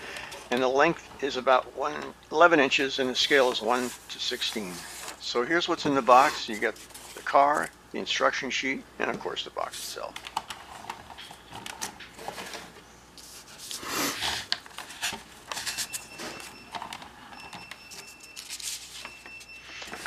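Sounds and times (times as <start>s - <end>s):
paper rustling and crinkling: 6.1s - 7.7s, 17.9s - 19.2s.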